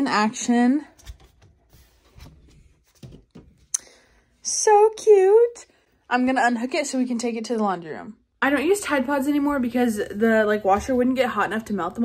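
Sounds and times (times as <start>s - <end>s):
light rubbing and rustling: 0.9s - 3.7s.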